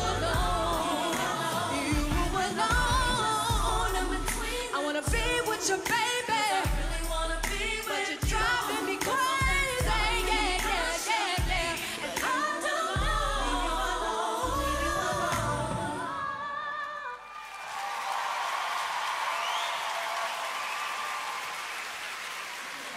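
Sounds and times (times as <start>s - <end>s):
backing music with pulsing bass: 0.0s - 5.3s
woman singing: 0.0s - 17.3s
audience cheering and applauding: 16.8s - 22.9s.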